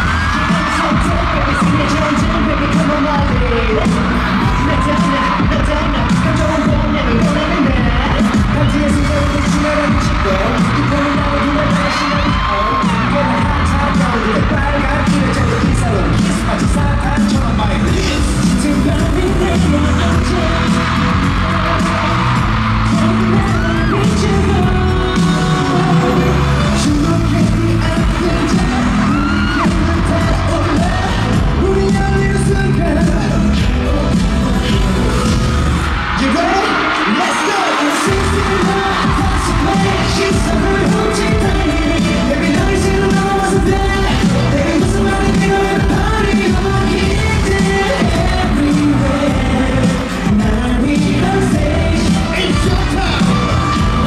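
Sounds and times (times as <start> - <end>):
live pop music with singing: 0.0 - 54.0.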